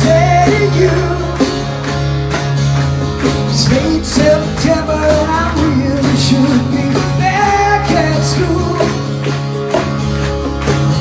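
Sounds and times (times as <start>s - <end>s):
bass line: 0.0s - 11.0s
strummed acoustic guitars: 0.0s - 11.0s.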